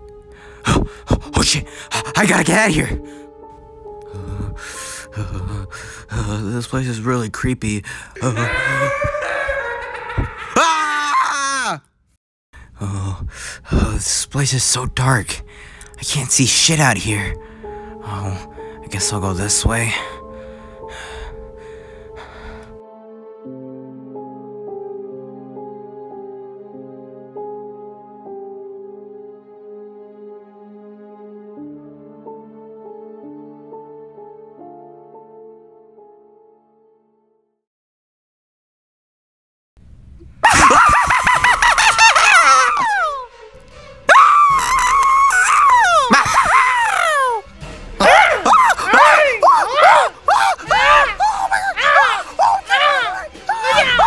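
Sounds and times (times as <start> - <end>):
background music held notes: 0.0 - 8.8, 12.8 - 37.0, 40.6 - 54.0
person gasping breathily: 7.8 - 8.8, 49.8 - 52.4
high-pitched wavering screams: 8.2 - 10.6.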